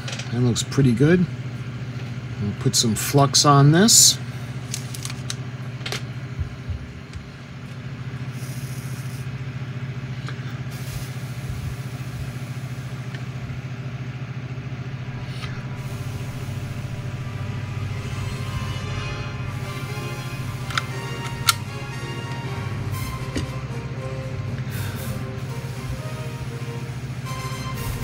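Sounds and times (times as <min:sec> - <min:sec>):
soldering gun humming: 0:06.1 - 0:28.0.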